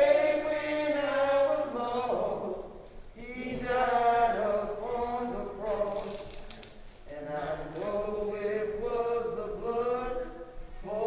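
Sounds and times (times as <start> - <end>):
group singing spiritual: 0.0 - 11.0.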